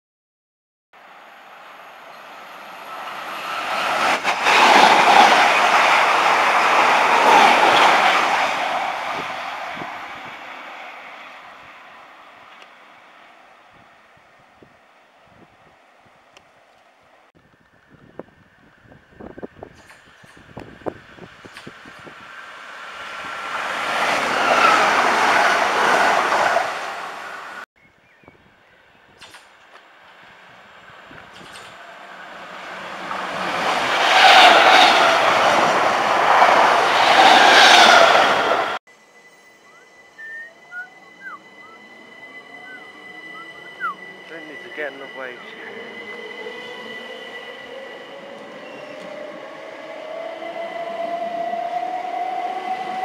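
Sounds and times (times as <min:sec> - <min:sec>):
train wheel-on-rail and motor noise: 0:01.0 - 0:27.6, 0:29.2 - 0:53.0
electric train high whine: 0:30.0 - 0:53.0.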